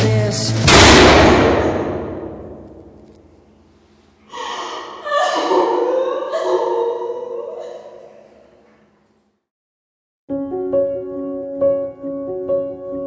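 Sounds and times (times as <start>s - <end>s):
loud heavy thump with echo: 0.6s - 3.0s
young woman sobbing and gasping: 4.3s - 8.3s.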